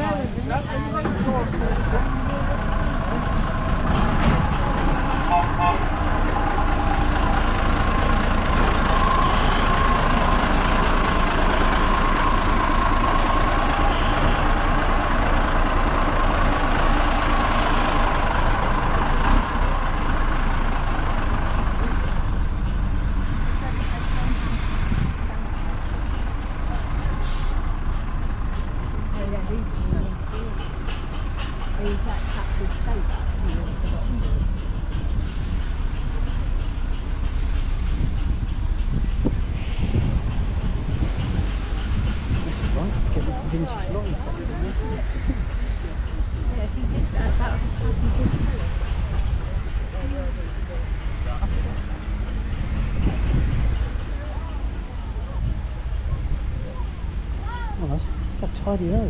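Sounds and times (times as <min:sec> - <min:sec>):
truck engine rumbling with whine: 0:00.0 - 0:59.0.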